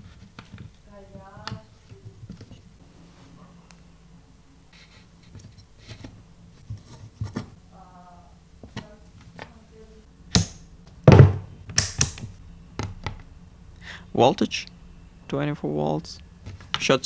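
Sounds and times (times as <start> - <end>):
loud thunks: 10.4 - 13.2.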